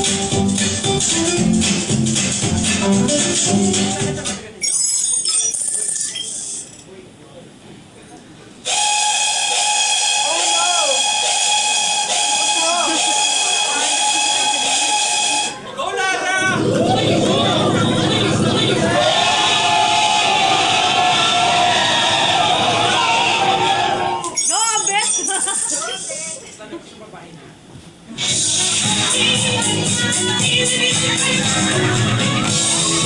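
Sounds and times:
whistle-like chord of tones: 8.7s - 15.6s
voices: 12.1s - 27.6s, 28.6s - 33.0s
people laughing: 12.6s - 15.0s, 25.0s - 27.0s
loud low rumble: 16.4s - 22.9s.

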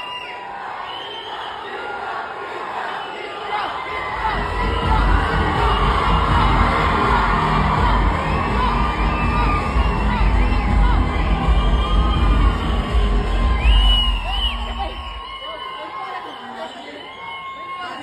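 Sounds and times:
crowd cheering and shouting: 0.0s - 18.0s
music: 4.2s - 15.2s.

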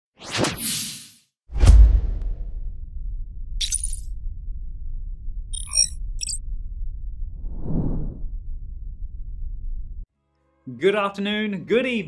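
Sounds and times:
deep low boom: 1.5s - 10.0s
whoosh sound effects: 7.4s - 8.2s.

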